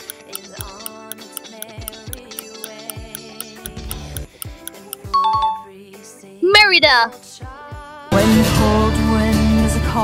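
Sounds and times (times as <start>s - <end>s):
ticking beat: 0.0s - 5.5s
light background music: 0.0s - 10.0s.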